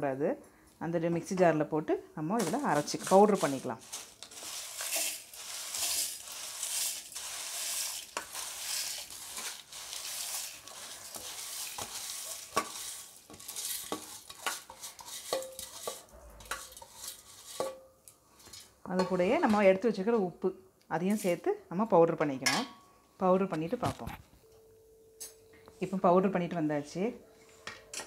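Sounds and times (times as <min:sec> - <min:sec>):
dry grains pouring into jar: 0:02.4 - 0:16.0.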